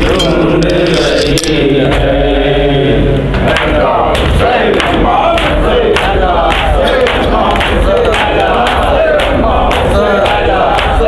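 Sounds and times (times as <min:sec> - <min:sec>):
rhythmic chest-beating slaps: 0:00.0 - 0:02.3, 0:03.1 - 0:11.0
crowd of voices: 0:00.0 - 0:11.0
men chanting through a microphone: 0:00.0 - 0:11.0.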